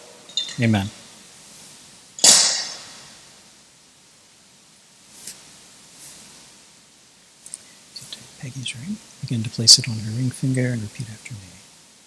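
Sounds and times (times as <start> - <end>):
faint clicks: 7.4 - 8.2.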